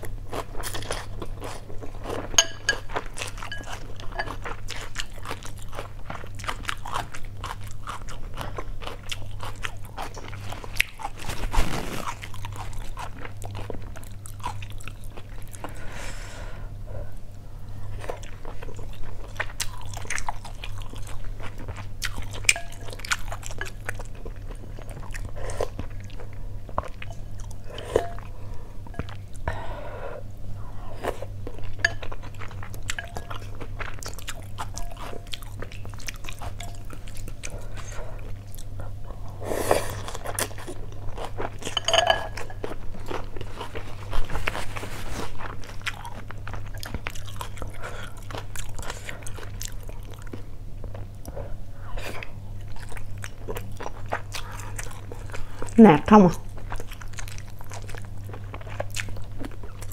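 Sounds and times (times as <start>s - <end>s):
chewing and slurping noodles: 0.0s - 15.9s, 17.8s - 29.5s, 30.8s - 55.8s, 56.4s - 59.9s
low steady hum: 0.0s - 59.9s.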